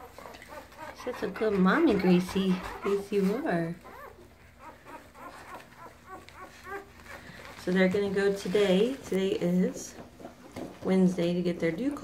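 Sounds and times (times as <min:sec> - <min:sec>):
puppies whimpering: 0:00.0 - 0:09.0.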